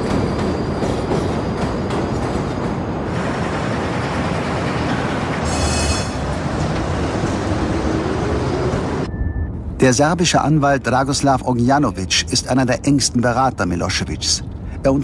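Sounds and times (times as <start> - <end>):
high wheel squeal: 0.0 - 1.9, 5.4 - 6.5
train rumbling along rails: 0.0 - 13.4.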